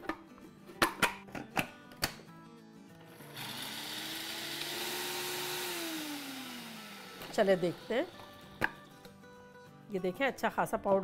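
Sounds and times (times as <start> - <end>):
blender grinding spices: 3.0 - 8.8.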